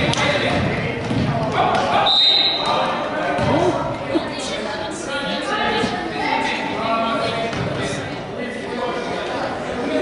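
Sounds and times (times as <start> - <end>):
people talking in echoing hall: 0.0 - 10.0
basketball bouncing on gym floor: 0.4 - 1.8.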